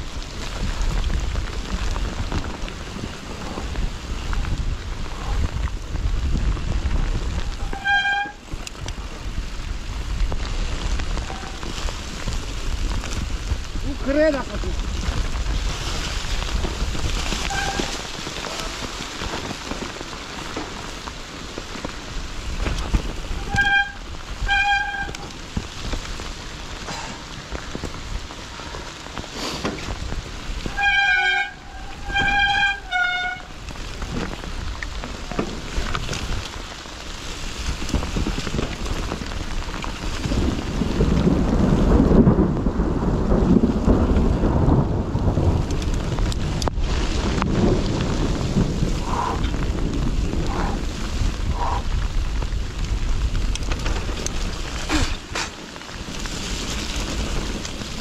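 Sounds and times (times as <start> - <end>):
low rumble: 0.0 - 58.0
wind and tyre noise: 0.0 - 58.0.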